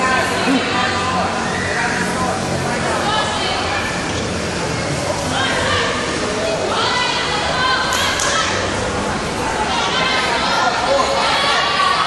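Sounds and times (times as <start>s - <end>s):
voices calling out and chattering: 0.0s - 12.0s.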